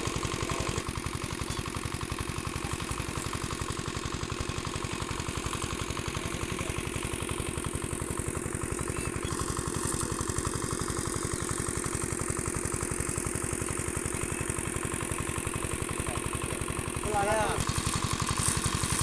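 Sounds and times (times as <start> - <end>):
small engine idling: 0.0 - 19.0.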